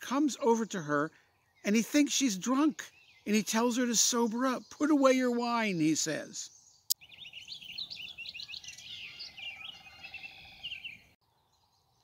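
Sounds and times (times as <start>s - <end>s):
songbirds chirping: 0.0s - 12.0s.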